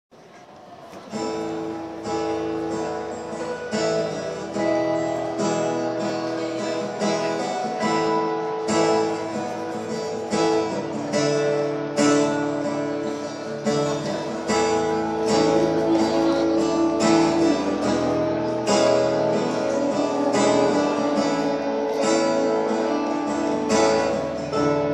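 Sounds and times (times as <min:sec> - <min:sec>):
acoustic guitars strummed: 0:00.9 - 0:24.9.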